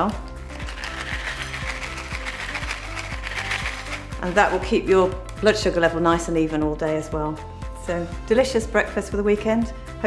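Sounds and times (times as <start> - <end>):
cereal pattering onto a plate: 0.5 - 4.3.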